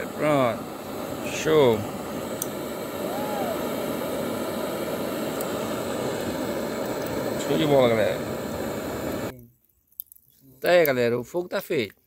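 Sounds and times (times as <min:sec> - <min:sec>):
blowtorch flame hissing: 0:00.0 - 0:09.3.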